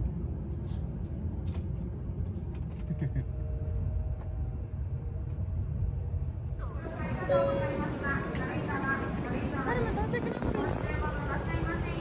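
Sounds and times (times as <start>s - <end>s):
train rumble inside carriage: 0.0s - 12.0s.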